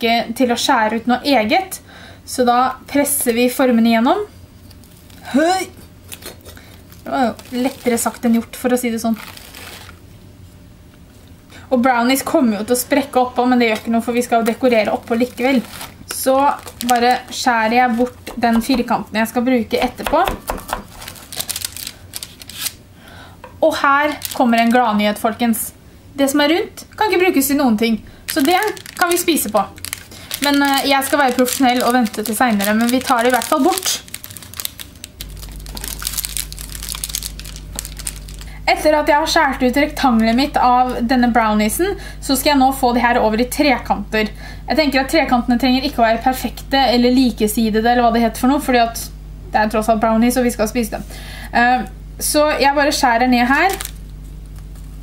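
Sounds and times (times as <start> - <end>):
steady low hum: 0.0 - 55.0
baking paper crinkling: 4.7 - 10.0, 14.2 - 19.0, 19.7 - 22.8, 23.7 - 25.2, 28.3 - 38.9, 39.5 - 41.0, 53.4 - 55.0.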